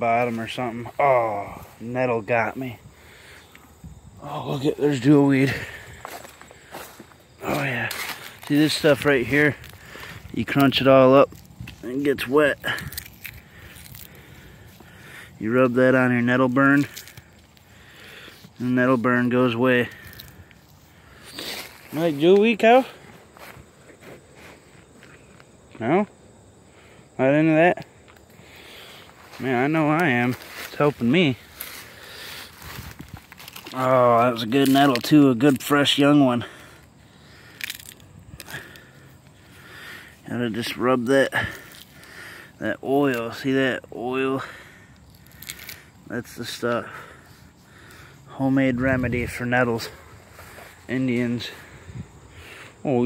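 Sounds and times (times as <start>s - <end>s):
plant stems crunched in a hand: 5.6s - 15.2s, 16.2s - 25.4s, 29.1s - 35.9s, 37.4s - 39.3s, 44.9s - 46.6s.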